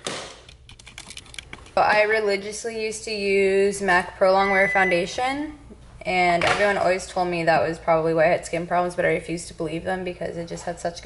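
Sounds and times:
small hard items clicking: 0.4s - 1.8s.

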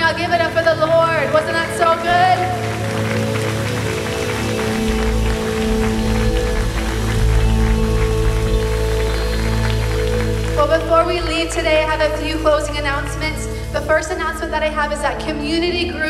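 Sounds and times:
soft sustained chords music: 0.0s - 16.0s
deep bass tone: 4.4s - 13.4s.

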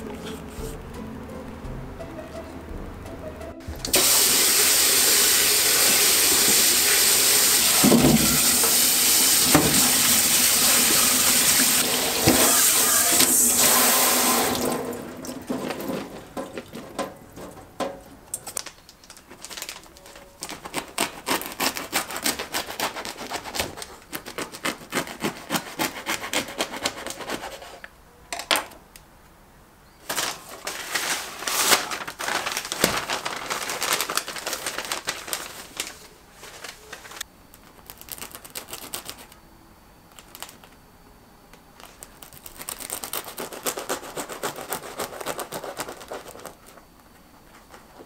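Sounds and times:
tap water spraying into sink: 3.9s - 15.4s.

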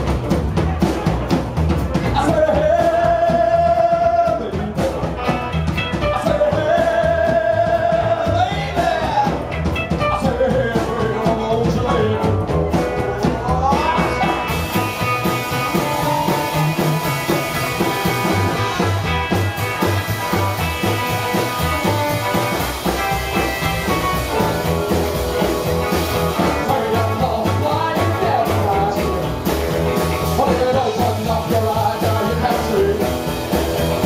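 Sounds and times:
drum kit: 0.0s - 34.0s
electric guitars: 0.0s - 34.0s
upright double bass: 0.0s - 34.0s.

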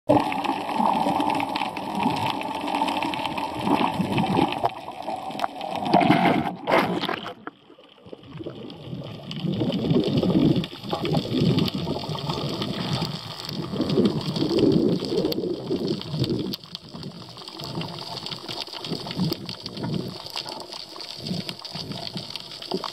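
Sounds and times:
water rushing and sloshing: 0.2s - 16.8s.

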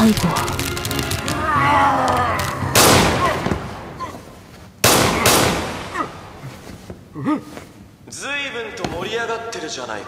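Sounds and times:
loud echoing bangs: 2.6s - 4.0s, 4.8s - 6.4s.

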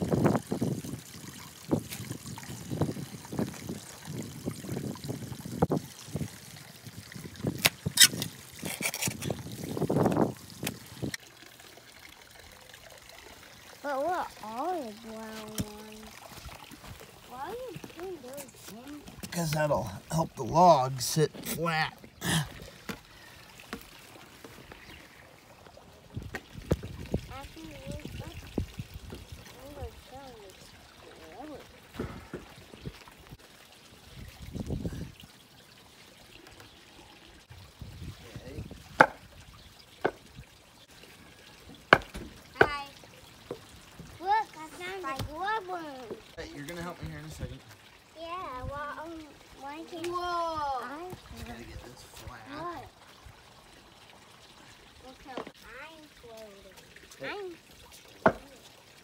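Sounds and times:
trickling water: 0.0s - 59.0s.

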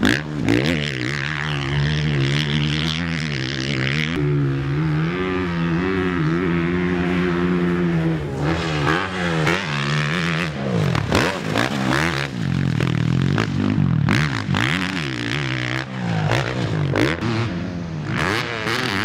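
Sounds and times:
motorbike engine revving: 0.0s - 19.0s.

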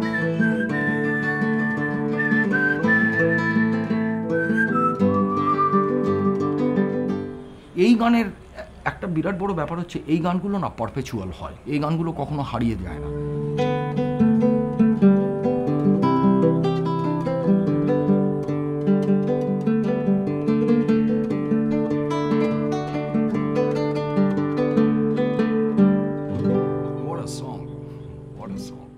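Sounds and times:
acoustic guitar plucked melody: 0.0s - 7.8s, 12.7s - 28.9s.

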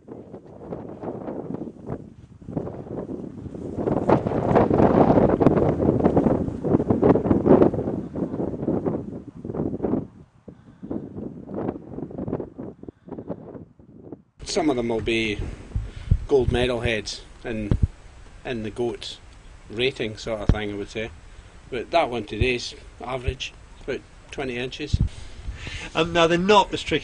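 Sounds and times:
wind gusting on microphone: 0.0s - 27.0s.

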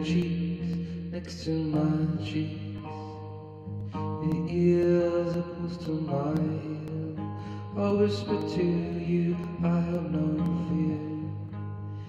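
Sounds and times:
electric guitar chords ringing: 0.0s - 12.0s.

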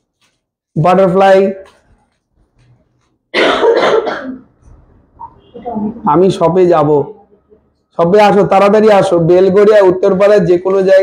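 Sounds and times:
man coughing: 3.3s - 4.5s.

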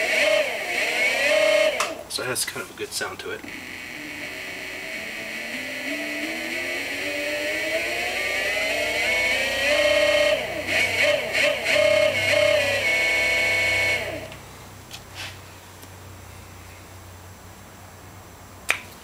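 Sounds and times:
electric motor whine: 0.0s - 2.1s, 3.3s - 14.4s.

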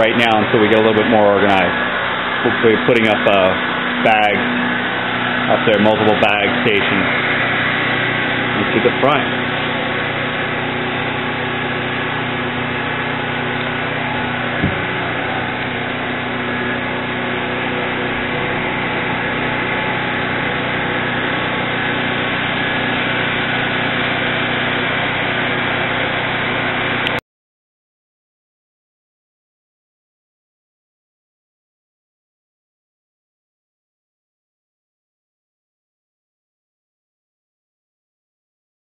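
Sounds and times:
noisy background: 0.0s - 25.6s
steady mechanical hum: 0.0s - 27.2s
low knock: 14.6s - 14.9s.

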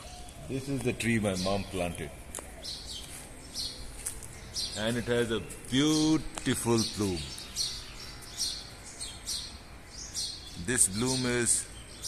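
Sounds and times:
faint outdoor background: 0.0s - 12.0s
small birds chirping: 0.0s - 12.0s.

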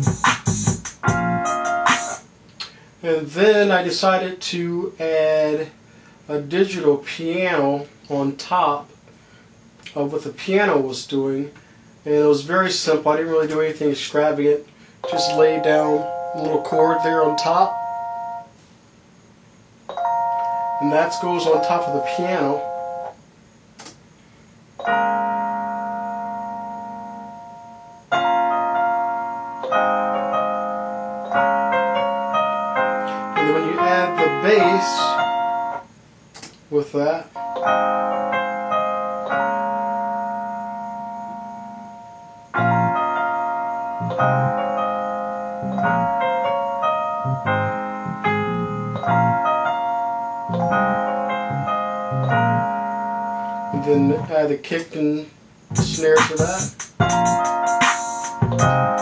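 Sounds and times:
bass line: 0.0s - 2.2s, 42.6s - 43.2s, 43.9s - 45.0s, 45.6s - 49.8s, 50.5s - 53.1s, 53.7s - 54.5s, 55.7s - 59.0s
digital piano chord: 0.0s - 2.2s, 15.0s - 18.5s, 19.9s - 23.2s, 24.8s - 35.9s, 37.3s - 54.5s, 55.7s - 59.0s.

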